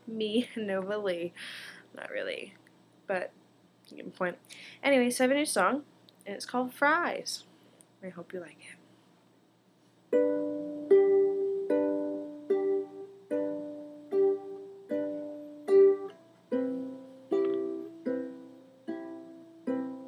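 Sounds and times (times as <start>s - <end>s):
ukulele strumming chords: 10.1s - 20.0s.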